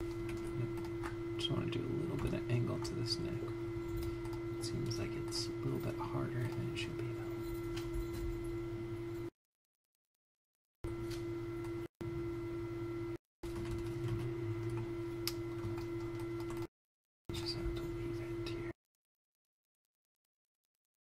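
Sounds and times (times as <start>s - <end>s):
constant tone: 0.0s - 9.3s
steady hum: 0.0s - 9.3s, 10.9s - 16.7s, 17.3s - 18.8s.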